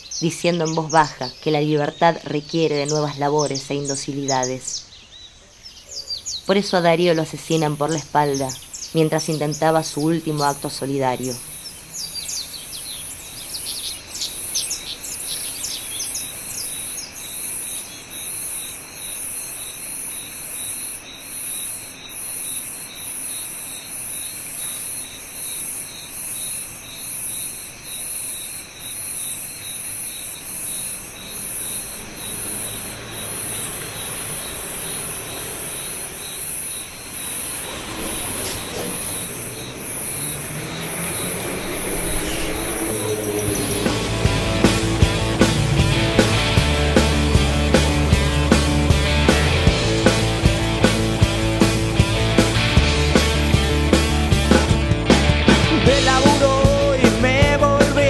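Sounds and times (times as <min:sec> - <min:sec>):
bird chirps: 0:00.0 - 0:52.7
insects trilling in a pulse: 0:00.0 - 0:54.8
low rumble: 0:37.2 - 0:57.8.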